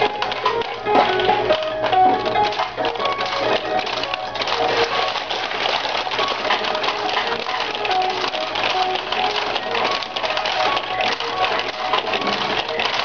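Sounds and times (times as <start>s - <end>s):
pachinko machine bonus music: 0.0s - 13.0s
steel balls rattling: 0.0s - 13.0s.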